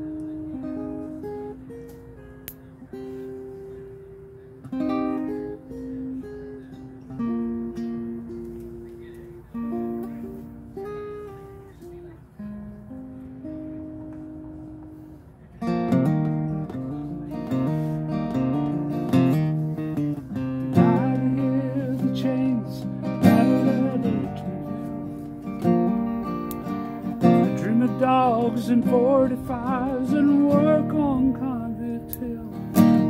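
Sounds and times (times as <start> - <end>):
acoustic guitar picking: 0.0 - 33.0.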